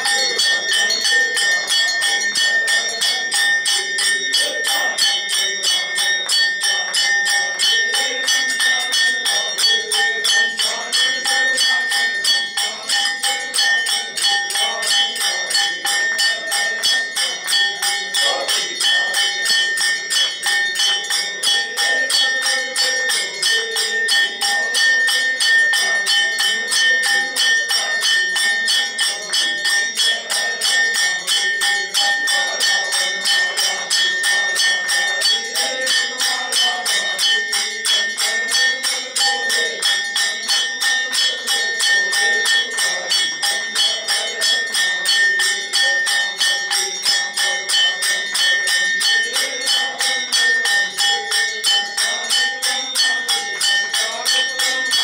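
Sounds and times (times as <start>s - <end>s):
devotional singing: 0.0s - 55.0s.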